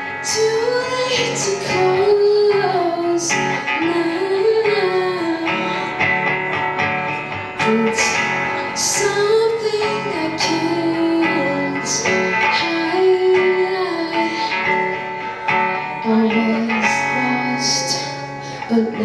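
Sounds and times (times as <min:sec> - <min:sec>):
strummed acoustic guitar: 0:00.0 - 0:19.0
woman singing: 0:00.0 - 0:19.0.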